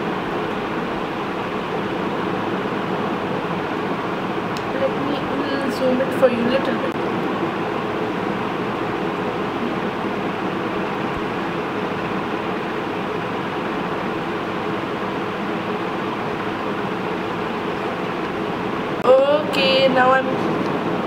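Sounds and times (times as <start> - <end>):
faint hum: 0.0 - 21.0.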